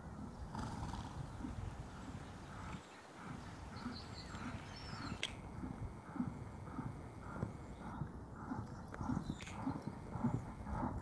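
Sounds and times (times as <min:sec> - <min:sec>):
hoofbeats on sand: 0:00.0 - 0:11.0.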